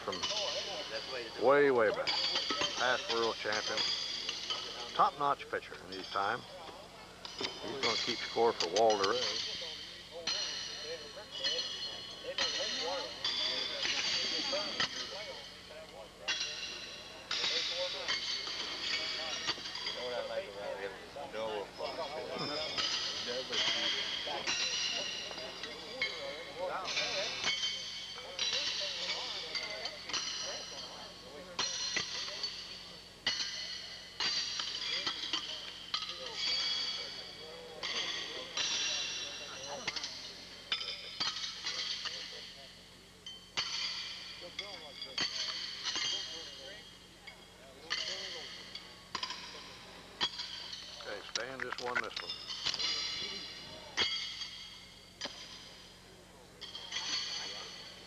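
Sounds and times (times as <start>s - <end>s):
horseshoes clanging against metal: 0.0s - 56.0s, 56.6s - 58.0s
murmur of voices: 0.0s - 58.0s.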